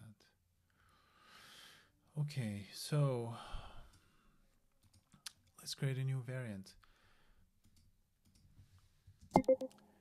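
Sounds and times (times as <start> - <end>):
brief faint tone: 9.4 - 9.7.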